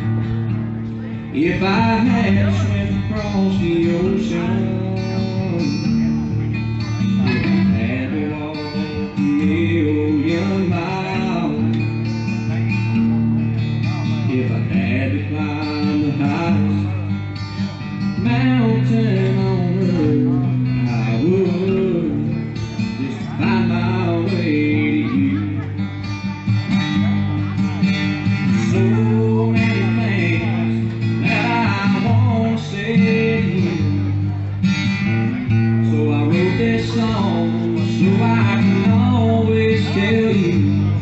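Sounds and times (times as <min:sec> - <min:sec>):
acoustic guitar strumming: 0:00.0 - 0:41.0
man singing: 0:01.0 - 0:13.2, 0:13.8 - 0:25.9, 0:27.0 - 0:41.0.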